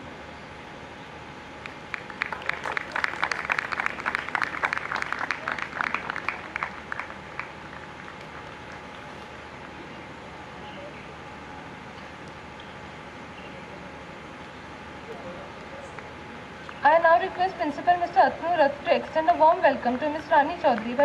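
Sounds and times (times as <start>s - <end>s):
audience applause: 1.6s - 9.3s.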